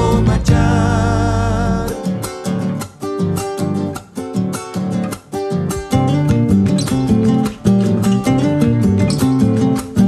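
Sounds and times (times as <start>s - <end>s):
man singing with vibrato: 0.0s - 2.2s
classical guitar strummed chords: 0.0s - 10.0s.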